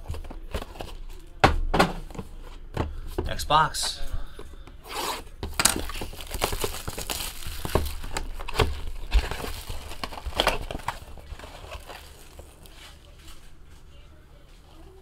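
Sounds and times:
plastic shrink-wrap crinkling: 0:05.6 - 0:13.5
cardboard box rustling: 0:05.8 - 0:13.1.

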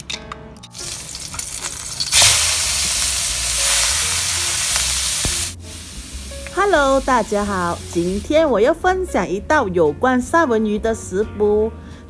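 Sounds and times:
fish sizzling in hot oil: 0:00.8 - 0:08.3.

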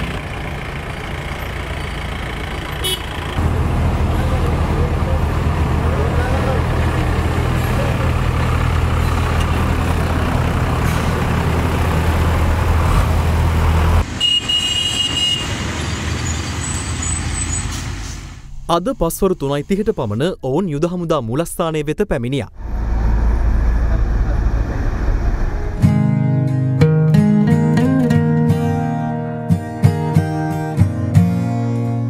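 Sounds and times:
bus engine droning: 0:00.0 - 0:20.2, 0:22.5 - 0:31.0
people's voices: 0:03.4 - 0:08.7.

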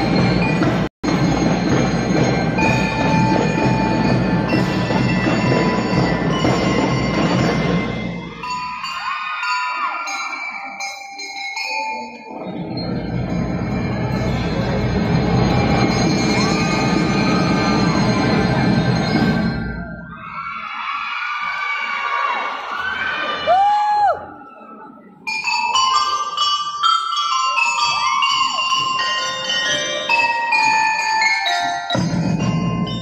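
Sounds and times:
drum and lyre band playing: 0:00.0 - 0:09.1, 0:12.3 - 0:20.1, 0:25.3 - 0:33.0
bell lyre melody: 0:00.0 - 0:20.1, 0:25.3 - 0:33.0.

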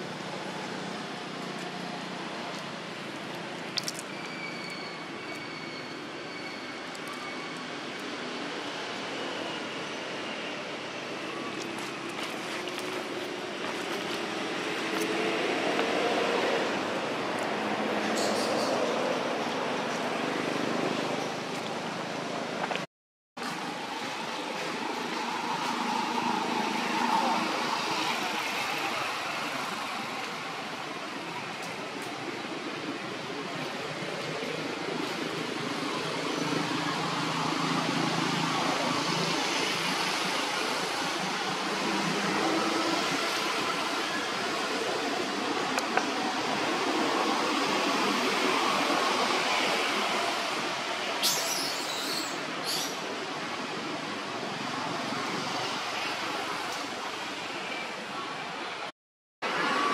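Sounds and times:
outdoor background noise: 0:00.0 - 0:59.9.

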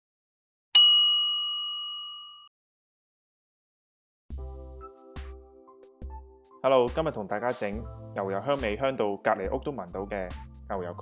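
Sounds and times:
bright bell-like ding: 0:00.8 - 0:02.5.

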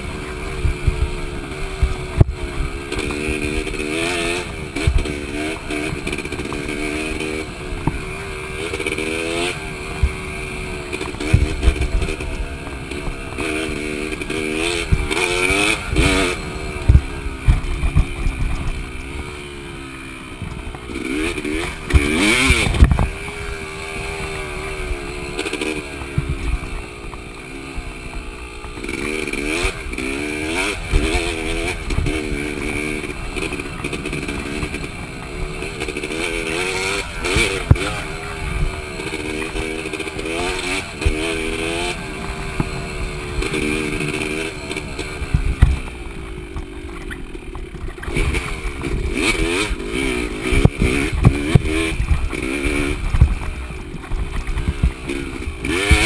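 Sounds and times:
bike knocking and rattling: 0:00.0 - 0:56.0
dirt bike engine revving: 0:00.0 - 0:56.0.

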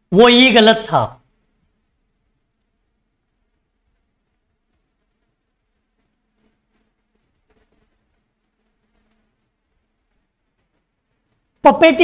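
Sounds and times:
faint low hum: 0:00.9 - 0:12.0.

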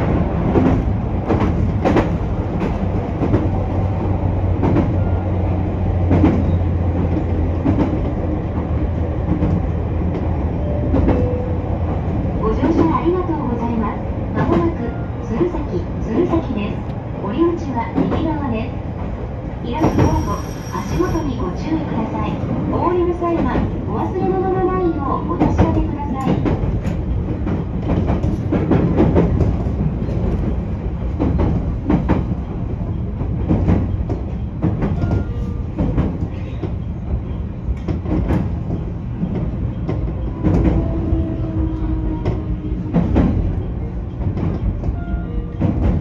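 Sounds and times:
rail joint clicks: 0:00.0 - 0:46.0
train wheels rumbling on rail: 0:00.0 - 0:46.0.

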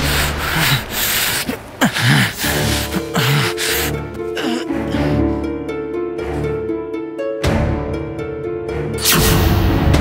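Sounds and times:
background music low gliding tones: 0:00.0 - 0:10.0.

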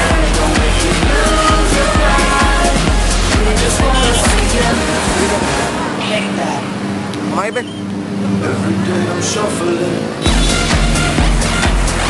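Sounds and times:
dance music bass: 0:00.0 - 0:05.9, 0:10.2 - 0:12.0
crowd chatter: 0:00.0 - 0:07.0.

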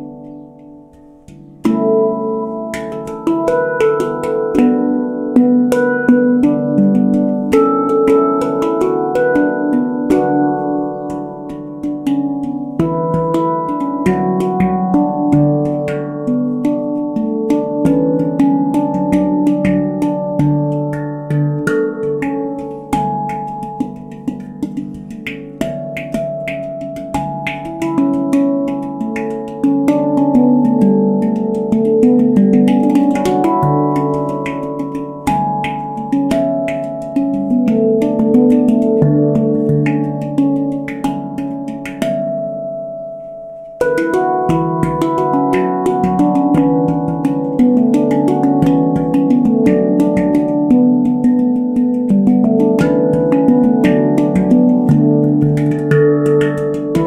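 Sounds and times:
handpan notes ringing: 0:00.0 - 0:57.0.

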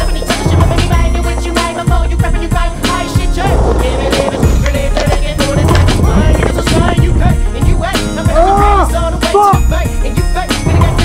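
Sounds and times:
skateboard wheels rolling on concrete: 0:00.0 - 0:09.1
loud background music: 0:00.0 - 0:11.0.

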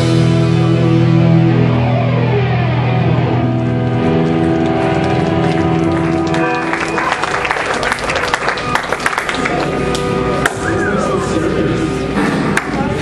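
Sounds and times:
distorted electric guitars chord: 0:00.0 - 0:13.0
crowd clapping: 0:03.6 - 0:11.1, 0:12.5 - 0:12.9.

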